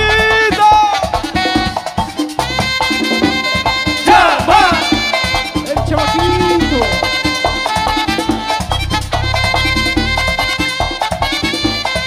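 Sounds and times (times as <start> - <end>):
electric bass: 0.0 - 11.8
accordion runs: 0.0 - 12.0
drum and conga beat: 0.0 - 12.0.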